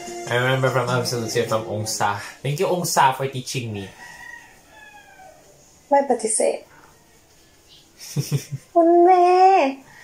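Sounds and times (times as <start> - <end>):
rooster crowing faintly: 3.8 - 5.7.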